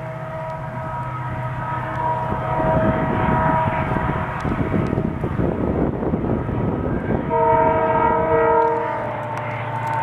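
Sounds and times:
train horn chord: 0:00.0 - 0:05.3, 0:07.0 - 0:10.0
diesel locomotive engine rumble: 0:00.0 - 0:10.0.

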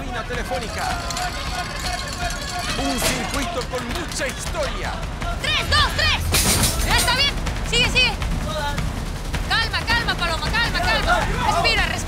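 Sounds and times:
low background rumble: 0:03.8 - 0:12.0.

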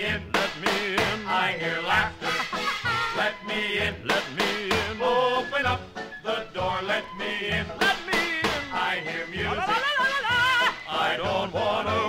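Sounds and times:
orchestra with men singing: 0:00.0 - 0:12.0.

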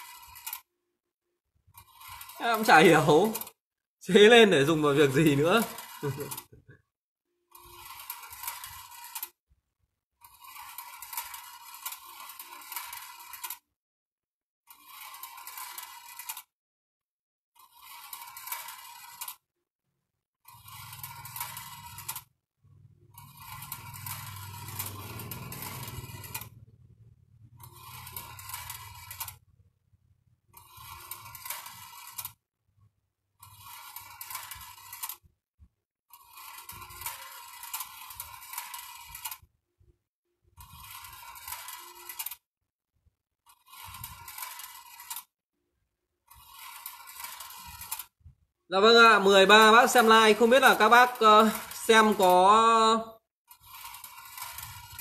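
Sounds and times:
metal balls rolling on wire track: 0:00.0 - 0:00.7, 0:01.7 - 0:06.6, 0:07.5 - 0:09.4, 0:10.2 - 0:13.7, 0:14.7 - 0:16.5, 0:17.6 - 0:19.5, 0:20.4 - 0:32.4, 0:33.4 - 0:35.3, 0:36.1 - 0:39.5, 0:40.5 - 0:42.4, 0:43.5 - 0:45.3, 0:46.3 - 0:55.0.

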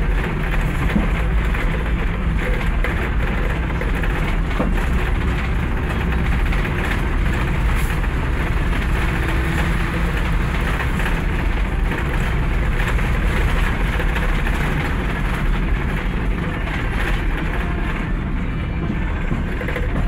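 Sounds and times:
bus engine and road noise: 0:00.0 - 0:20.0.

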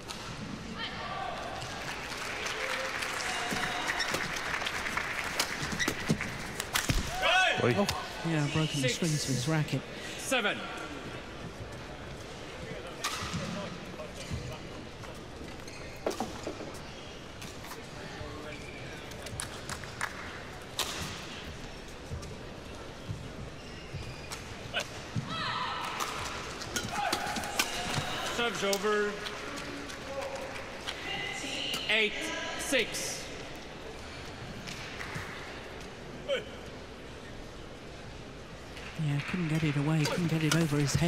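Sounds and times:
indoor arena ambience: 0:00.0 - 0:41.0
shoe squeaks on court: 0:15.5 - 0:17.8, 0:23.5 - 0:24.6.

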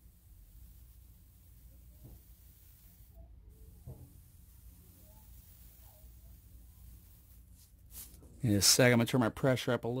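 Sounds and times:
airbrush spraying hiss: 0:00.0 - 0:08.2.

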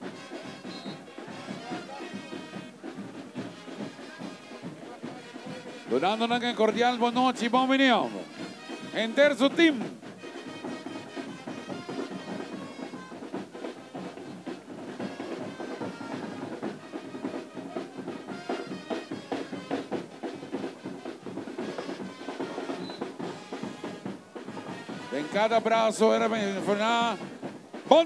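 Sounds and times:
music with drums and percussion: 0:00.0 - 0:28.0.

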